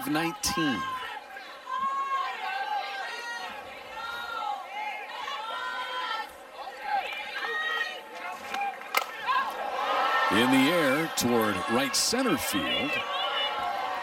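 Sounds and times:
crowd shouting and chatter: 0.0s - 14.0s.

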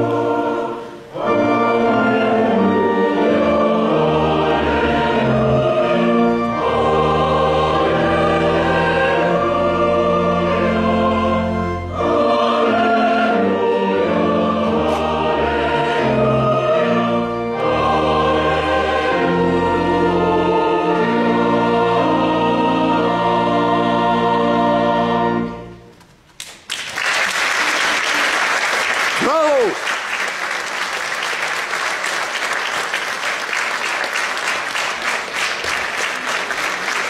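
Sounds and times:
mixed choir singing: 0.0s - 25.7s.

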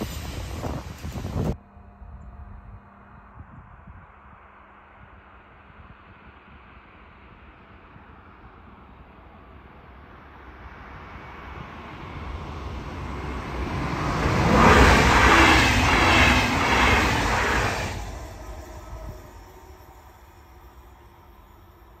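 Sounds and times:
electric train passing at speed: 0.0s - 22.0s.

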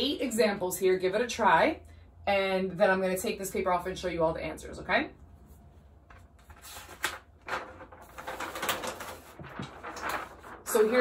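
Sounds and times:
paper rustling and crinkling: 6.1s - 11.0s.

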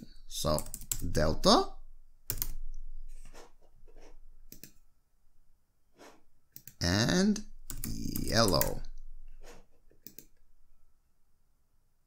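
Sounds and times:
computer keyboard typing: 0.6s - 1.2s, 2.3s - 2.6s, 4.5s - 4.8s, 7.6s - 8.8s, 10.0s - 10.3s.

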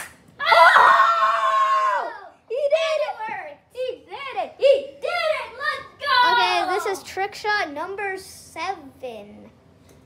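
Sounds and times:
child yelling excitedly: 0.4s - 7.0s.

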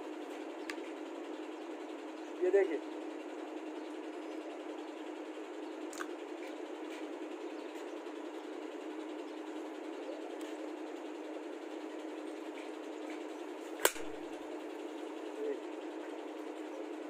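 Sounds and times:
low background hum: 0.0s - 17.0s
rifle action crack: 13.8s - 14.2s.

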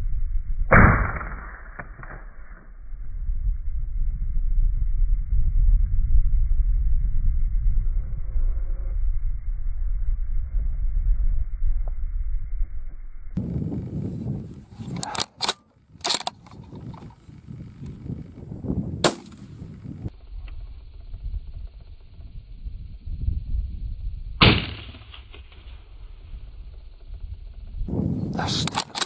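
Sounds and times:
low steady rumble: 0.0s - 29.0s
rifle shot with ringing echo: 0.7s - 2.4s, 19.0s - 19.6s, 24.4s - 25.4s
sharp crack: 0.7s - 2.7s, 19.0s - 19.9s, 24.4s - 26.2s, 28.4s - 29.0s
sharp clicks: 14.8s - 18.0s, 28.3s - 29.0s.

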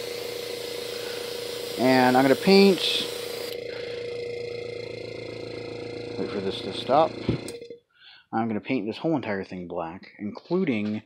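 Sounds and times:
airbrush compressor humming: 0.0s - 7.8s.

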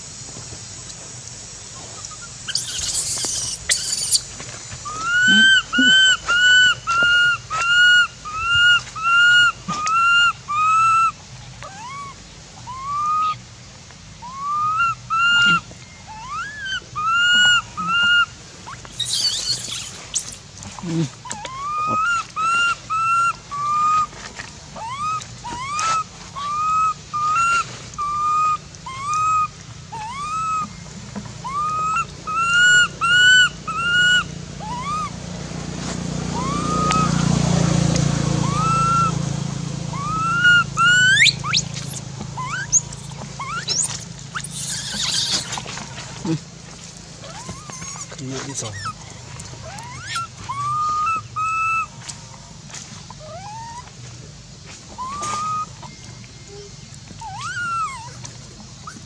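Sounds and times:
baby monkey crying: 2.2s - 4.2s, 4.9s - 13.4s, 14.2s - 24.1s, 24.8s - 30.8s, 31.4s - 35.2s, 36.3s - 37.4s, 38.4s - 39.2s, 39.9s - 45.7s, 47.2s - 49.0s, 49.6s - 51.9s, 53.2s - 53.9s, 55.0s - 59.0s
sharp rising squeals: 2.5s - 4.2s, 18.7s - 20.4s, 36.3s - 45.7s.

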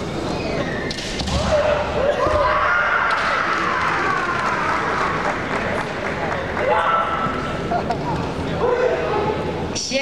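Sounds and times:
large hall background noise: 0.0s - 10.0s.

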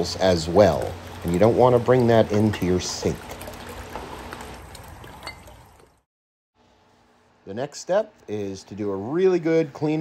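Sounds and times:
liquid splashing in plastic bucket: 0.4s - 6.0s.

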